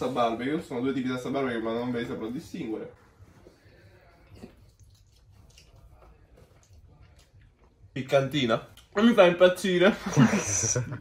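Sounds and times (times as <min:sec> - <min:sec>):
chewing and mouth sounds: 0:04.1 - 0:08.0.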